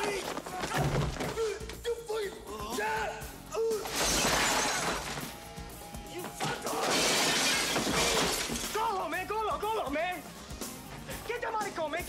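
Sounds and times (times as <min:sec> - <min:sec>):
film score music: 0:00.0 - 0:04.0, 0:04.8 - 0:06.8, 0:08.7 - 0:12.0
glass shattering and goods falling: 0:03.8 - 0:05.5, 0:06.3 - 0:09.0.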